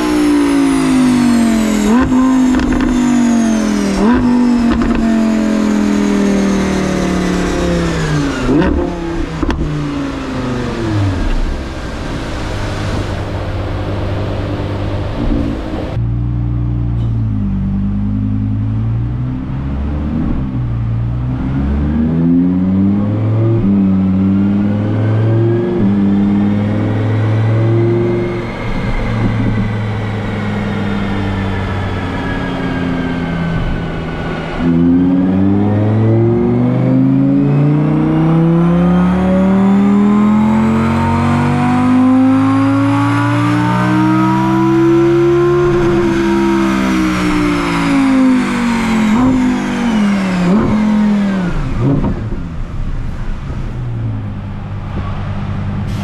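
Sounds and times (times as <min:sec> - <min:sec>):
loud rushing noise: 0:00.0 - 0:16.0
car engine revving: 0:00.0 - 0:56.0.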